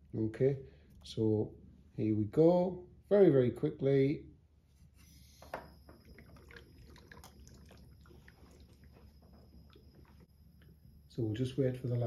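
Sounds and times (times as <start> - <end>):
fizzing and popping of gas bubbles: 5.5 - 10.8.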